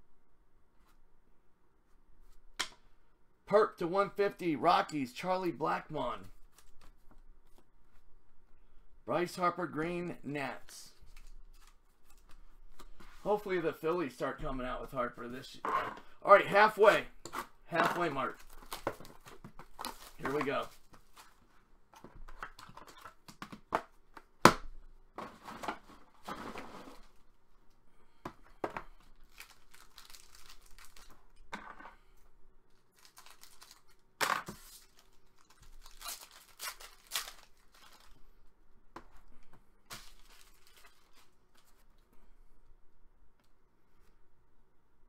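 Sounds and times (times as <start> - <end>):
foil wrapper crinkling and tearing: 29.2 - 31.3, 32.7 - 38.2, 39.9 - 41.8.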